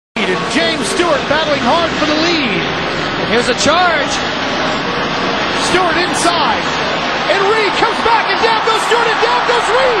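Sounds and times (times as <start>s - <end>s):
loud background noise: 0.2s - 10.0s
man talking excitedly: 5.6s - 6.6s, 7.3s - 10.0s.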